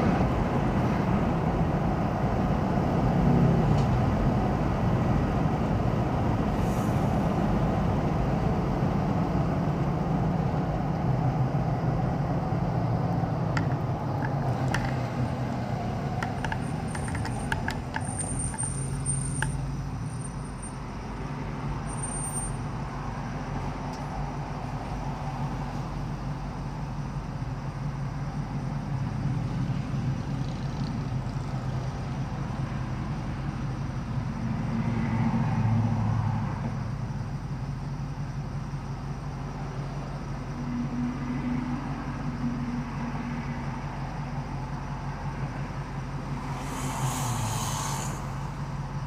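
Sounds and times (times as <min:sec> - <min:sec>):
vehicles passing: 0:00.0 - 0:49.0
car engine idling: 0:07.4 - 0:21.3, 0:36.8 - 0:41.2, 0:41.8 - 0:49.0
short hiss: 0:46.4 - 0:48.6.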